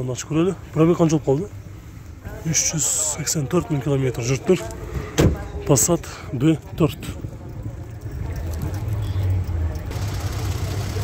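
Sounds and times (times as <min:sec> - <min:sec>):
man talking: 0:02.3 - 0:07.7.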